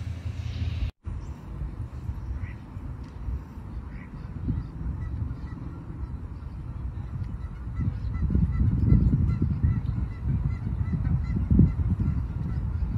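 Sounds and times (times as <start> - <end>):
wind buffeting microphone: 0.0 - 12.9
geese honking: 3.7 - 12.9.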